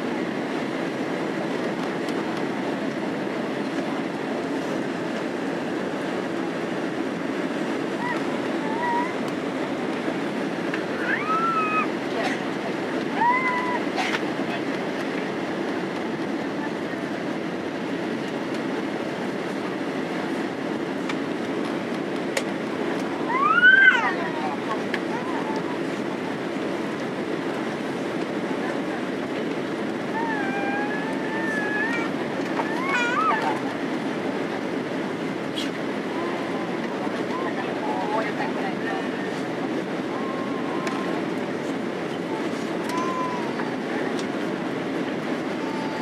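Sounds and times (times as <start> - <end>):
airliner cabin engine and airflow noise: 0.0 - 46.0.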